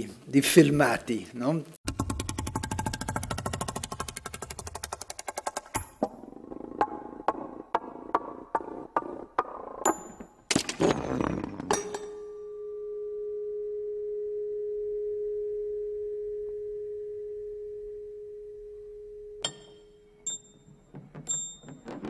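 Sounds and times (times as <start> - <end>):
metal ringing tone: 11.8 - 21.8.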